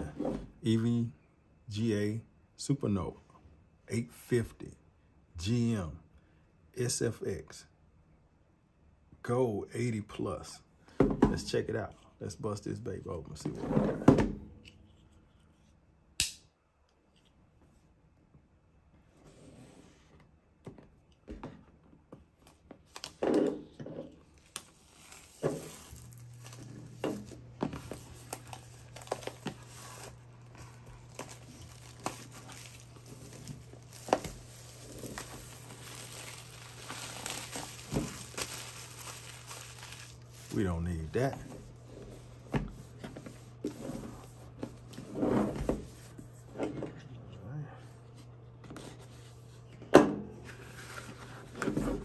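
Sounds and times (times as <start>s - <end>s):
shrink wrap crinkling and tearing: 24.2s - 41.3s.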